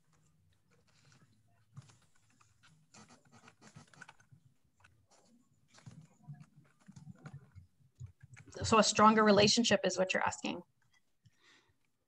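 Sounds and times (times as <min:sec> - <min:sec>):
keyboard typing: 0:00.0 - 0:08.7.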